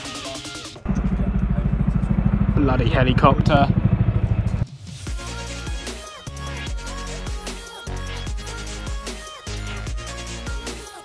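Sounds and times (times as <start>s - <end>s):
background music: 0.0s - 1.4s, 4.5s - 11.0s
helicopter rotor pulsing: 0.8s - 4.6s.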